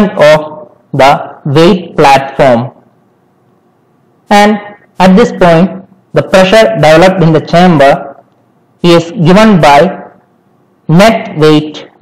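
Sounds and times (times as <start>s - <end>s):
man speaking: 0.0s - 2.8s, 4.2s - 8.2s, 8.8s - 10.2s, 10.9s - 12.0s.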